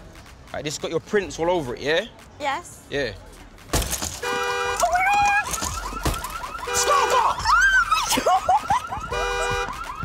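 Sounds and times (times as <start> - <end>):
car alarm: 4.2 - 10.0.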